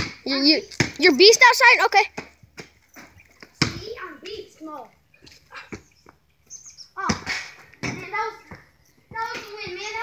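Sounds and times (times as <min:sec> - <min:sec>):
basketball bouncing on concrete: 0:00.0 - 0:01.4, 0:02.0 - 0:04.4, 0:07.0 - 0:10.0
bird chirps: 0:05.0 - 0:07.0.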